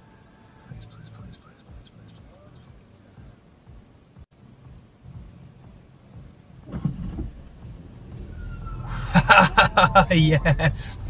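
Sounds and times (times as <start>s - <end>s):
faint muffled bumps: 0.7s - 11.0s
car driving rumble from inside: 4.3s - 11.0s.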